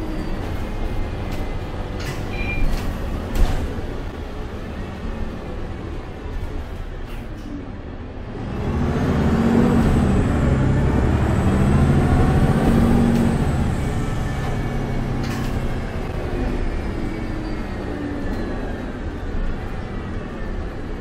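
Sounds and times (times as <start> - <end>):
bus engine pulling away: 0.0 - 21.0.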